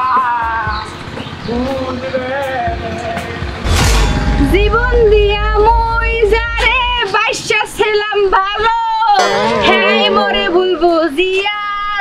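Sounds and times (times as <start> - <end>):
whoosh with deep rumble: 3.7 - 7.3
song: 9.2 - 10.6
wavering vocal line: 9.2 - 10.8.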